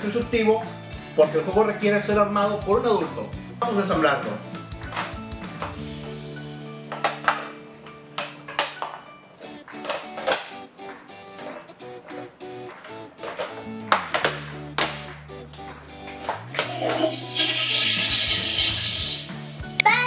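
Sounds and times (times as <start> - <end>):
background music: 0.0 - 20.0.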